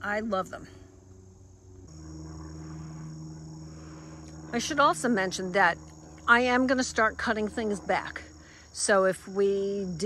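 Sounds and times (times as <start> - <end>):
insects trilling: 0.0 - 10.0
low steady hum: 0.0 - 10.0.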